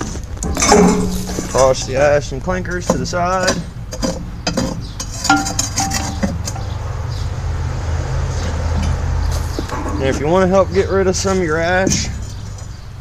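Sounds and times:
ash scraped from metal fire pot: 0:00.0 - 0:01.9
steady low rumble: 0:00.0 - 0:04.5, 0:06.4 - 0:13.0
metallic rings: 0:00.5 - 0:01.8.

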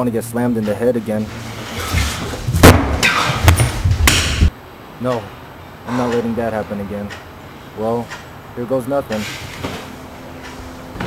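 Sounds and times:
loud knocks and thuds: 0:01.8 - 0:04.5.

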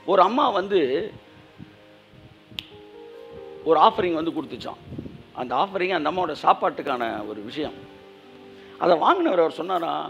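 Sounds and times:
soft background music: 0:00.0 - 0:10.0
sharp snap: 0:02.6 - 0:02.8.

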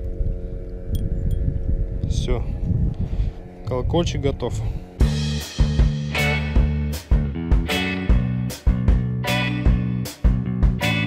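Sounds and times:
wind rumbling on microphone: 0:00.0 - 0:05.2
steady low hum: 0:00.0 - 0:07.6.

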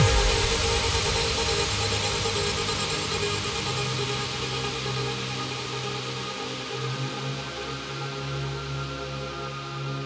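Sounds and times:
low bass note: 0:00.0 - 0:01.4
synth pad chords: 0:00.0 - 0:05.6.

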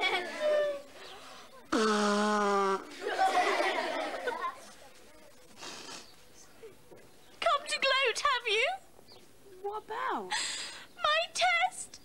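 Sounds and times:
jumble of voices: 0:02.9 - 0:07.4.

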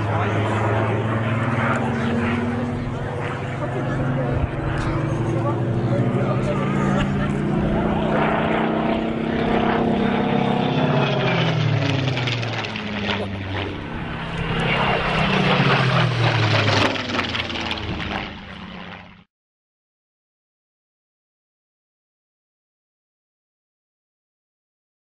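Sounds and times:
propeller airplane flying overhead: 0:00.0 - 0:19.3.

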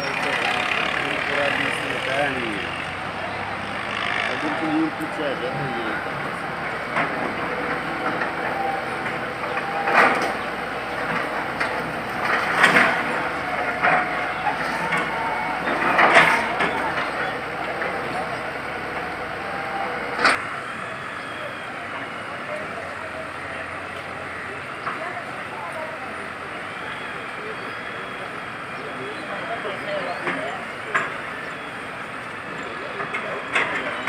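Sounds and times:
crowd murmur: 0:00.0 - 0:34.0
diesel backhoe running: 0:00.0 - 0:34.0.

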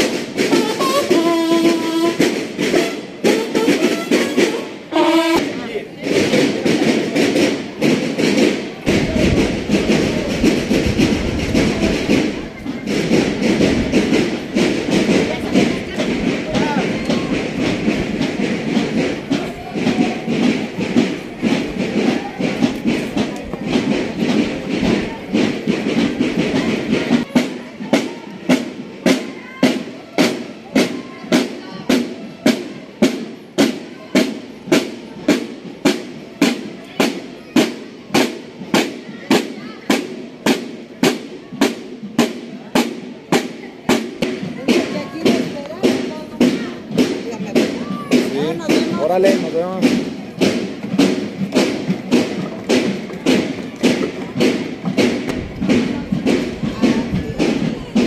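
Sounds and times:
crowd chatter: 0:00.0 - 0:58.0
marching snare and bass drums: 0:00.0 - 0:58.0.

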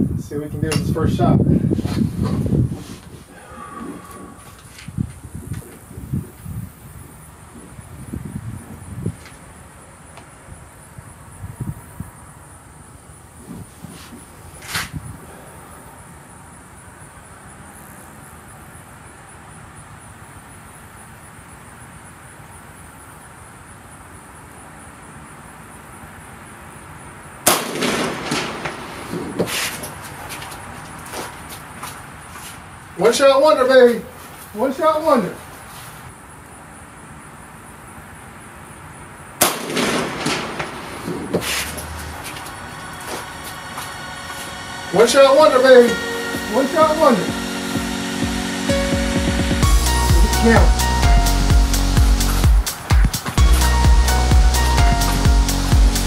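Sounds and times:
air rifle shot crack: 0:27.5 - 0:29.9, 0:39.4 - 0:42.0
clattering and movement noise: 0:27.8 - 0:32.6, 0:39.7 - 0:44.8.

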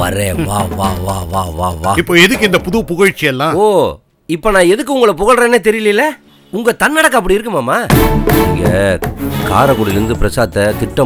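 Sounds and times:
man talking: 0:00.0 - 0:11.0
low background music: 0:07.9 - 0:11.0.

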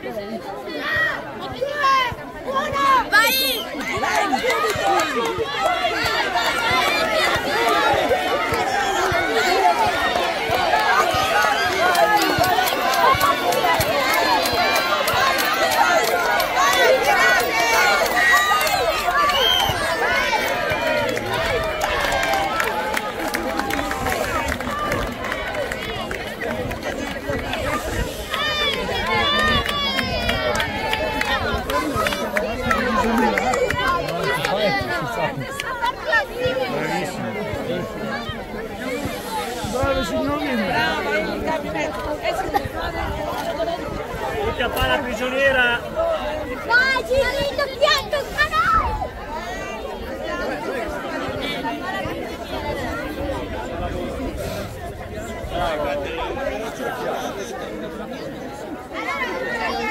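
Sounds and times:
crowd shouting and chattering: 0:00.0 - 0:59.9.

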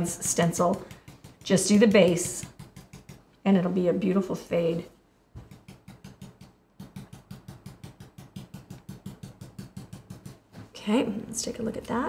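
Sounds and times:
stencil brush tapping on board: 0:00.3 - 0:03.2, 0:05.4 - 0:10.4.

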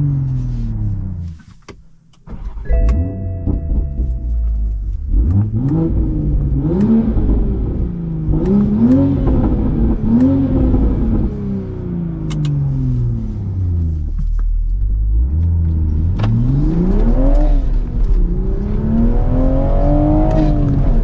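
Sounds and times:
car engine accelerating: 0:02.2 - 0:21.0.

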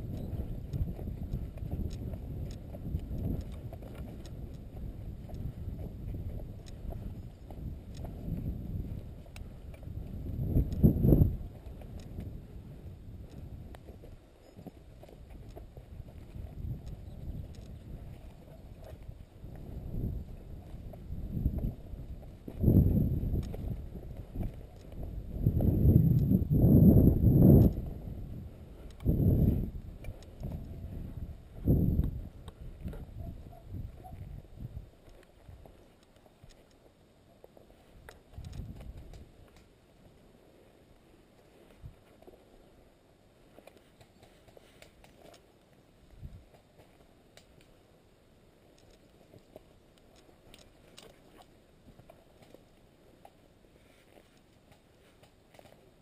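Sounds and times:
wind buffeting microphone: 0:00.0 - 0:35.8, 0:38.0 - 0:39.6
footsteps on dirt path: 0:00.0 - 0:40.8.

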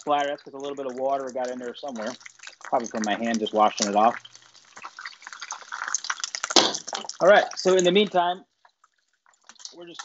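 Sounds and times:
fish deep-frying in hot oil: 0:00.0 - 0:10.0
oil crackling and spattering: 0:00.0 - 0:10.0.

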